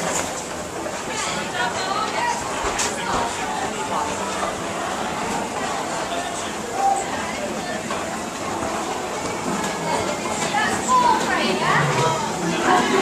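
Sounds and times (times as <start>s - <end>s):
murmur of overlapping voices: 0.0s - 13.0s.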